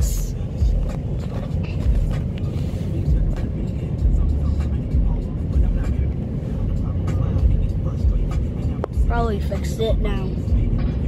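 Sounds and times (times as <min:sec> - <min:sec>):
car wash machinery rumbling: 0:00.0 - 0:09.7.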